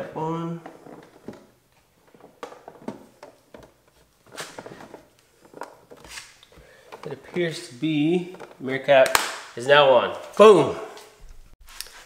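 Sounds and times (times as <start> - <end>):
plastic mirror cap snapping: 9.0 - 9.5.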